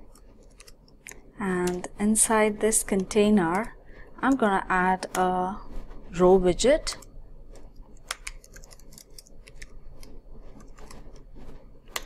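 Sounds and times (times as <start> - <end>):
woman speaking: 1.4 - 7.0
computer keyboard keys clicking: 8.0 - 11.0.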